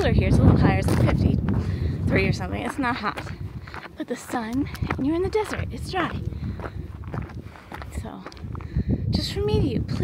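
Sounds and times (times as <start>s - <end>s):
footsteps on sandy dirt trail: 0.0s - 10.0s.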